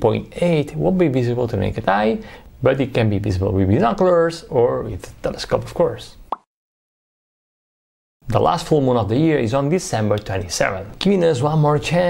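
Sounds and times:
man speaking: 0:00.0 - 0:06.2, 0:08.2 - 0:12.0.

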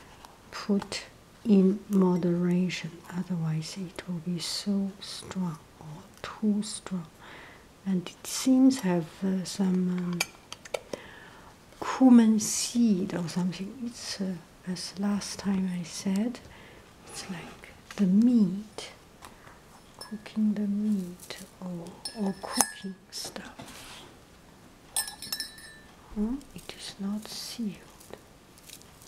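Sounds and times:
metal clinking against porcelain cup: 0:22.0 - 0:23.0, 0:25.0 - 0:25.9.

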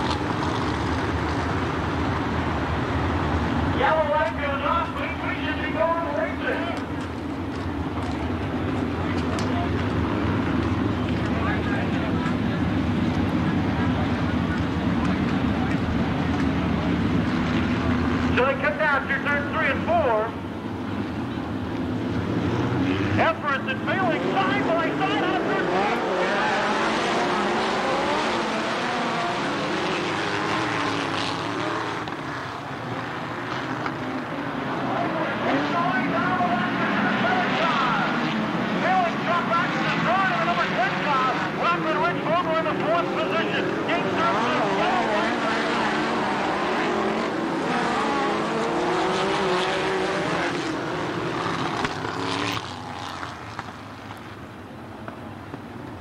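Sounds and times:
race car engines passing: 0:00.0 - 0:56.0.

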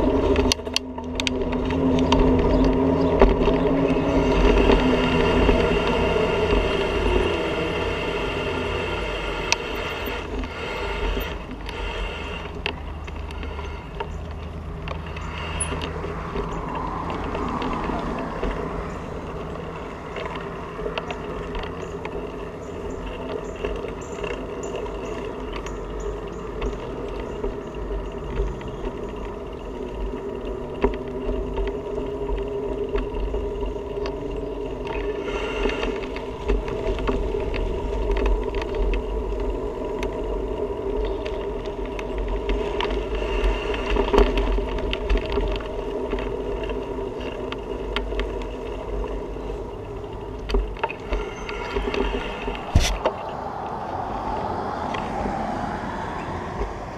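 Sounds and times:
bicycle clicks and rattles: 0:00.0 - 0:56.9
bicycle tyres rumbling on concrete: 0:00.0 - 0:56.9.

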